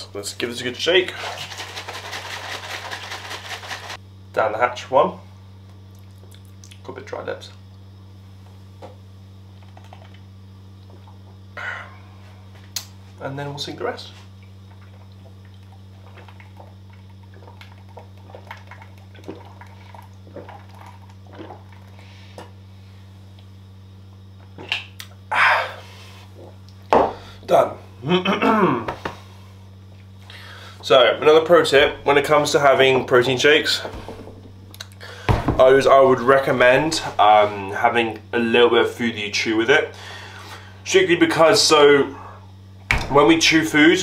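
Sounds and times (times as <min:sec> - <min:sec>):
shaker bottle sloshing: 0:01.1 - 0:04.0
low hum: 0:14.0 - 0:44.0
person gulping liquid: 0:14.7 - 0:22.0.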